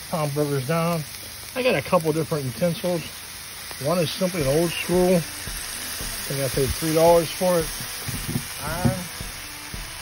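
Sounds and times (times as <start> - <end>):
vegetables sizzling on griddle: 0.0 - 10.0.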